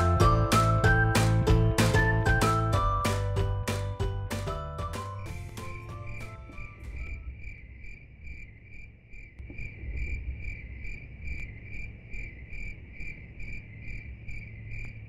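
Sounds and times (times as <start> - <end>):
cricket chirping: 5.2 - 15.0
low background rumble: 6.1 - 15.0.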